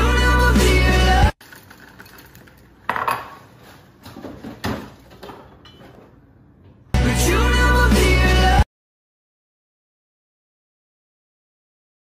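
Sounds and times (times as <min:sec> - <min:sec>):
music: 0:00.0 - 0:01.4, 0:07.0 - 0:08.7.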